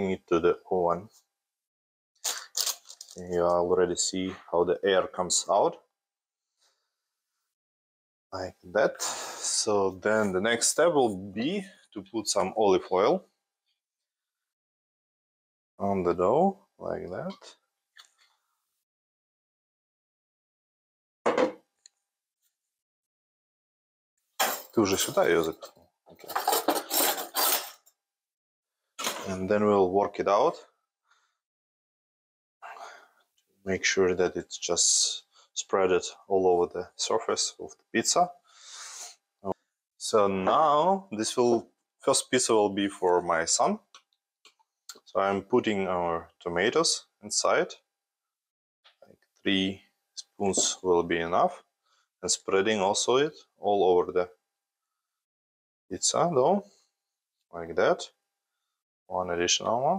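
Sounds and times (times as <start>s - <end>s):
metal utensils clattering in drawer: 24.4s - 27.8s.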